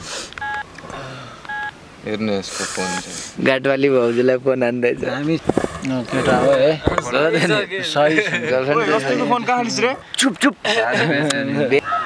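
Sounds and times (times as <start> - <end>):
phone keypad beeps: 0.4 - 0.7, 1.5 - 1.8, 2.8 - 3.0.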